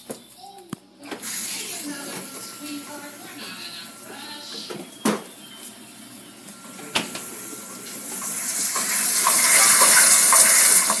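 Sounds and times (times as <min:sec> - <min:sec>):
dishwasher water splashing: 0:07.8 - 0:11.0.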